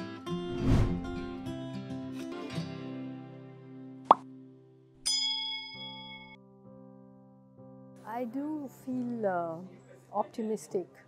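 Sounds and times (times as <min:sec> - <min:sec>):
soft background music: 0:00.0 - 0:11.0
bell-like ding: 0:05.1 - 0:06.4.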